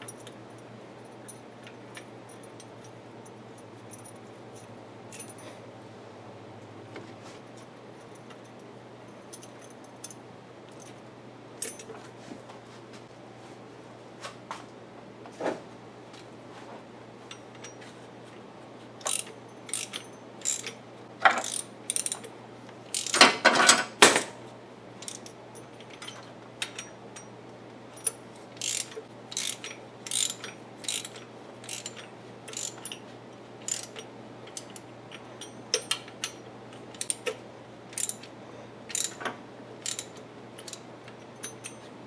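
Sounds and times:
metal tools clinking: 1.0s - 5.6s, 19.0s - 22.3s, 28.0s - 38.3s, 38.9s - 41.9s
hand ratchet clicking: 19.0s - 22.3s, 22.9s - 23.4s, 28.0s - 33.0s, 33.6s - 38.3s, 38.9s - 41.8s.

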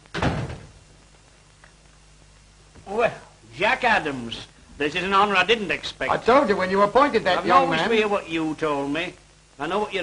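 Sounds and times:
wooden door shutting with thud: 0.1s - 0.8s.

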